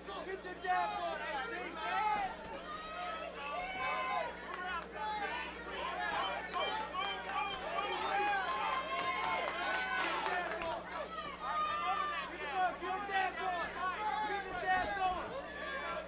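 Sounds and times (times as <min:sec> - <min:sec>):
crowd voices calling out: 0:00.0 - 0:16.0.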